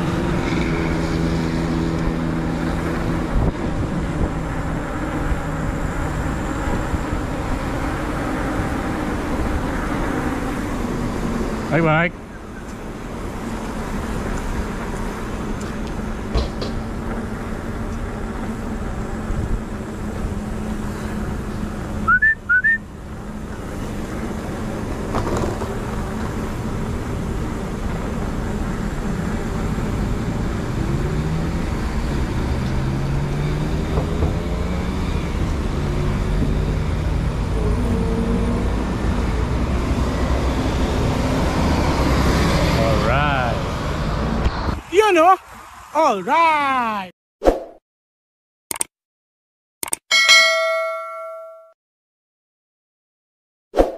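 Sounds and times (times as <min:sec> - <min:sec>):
wind noise: 0:00.0 - 0:11.5
vehicle engines pulling away: 0:00.0 - 0:44.8
road traffic: 0:00.0 - 0:47.1, 0:49.8 - 0:51.6
short high chirps: 0:22.1 - 0:22.8.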